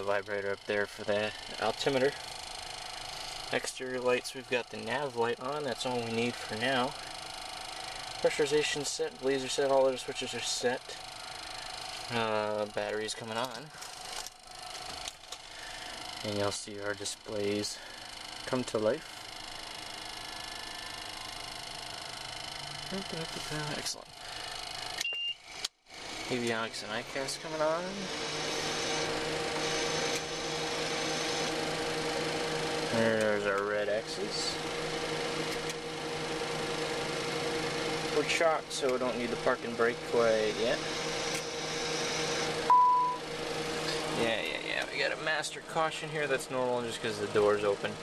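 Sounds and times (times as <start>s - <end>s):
electrical hum and whir: 0.0s - 48.0s
faint avionics whines: 0.0s - 48.0s
fan hiss: 26.1s - 48.0s
high-pitched warning tone: 27.3s - 32.5s, 40.5s - 43.3s.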